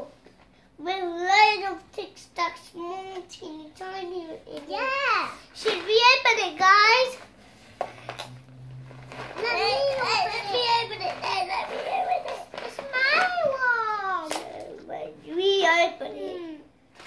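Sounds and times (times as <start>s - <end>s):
young children talking: 0.8s - 7.2s, 9.3s - 16.8s.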